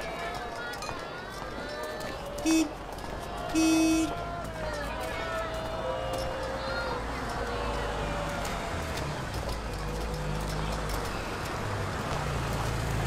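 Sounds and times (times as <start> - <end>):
distant voices: 0.0 - 13.0
car horn honking: 2.4 - 2.8, 3.5 - 4.2.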